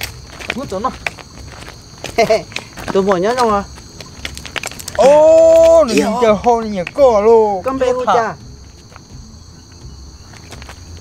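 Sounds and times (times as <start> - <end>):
footsteps on gravel: 0.0 - 7.2, 8.4 - 11.0.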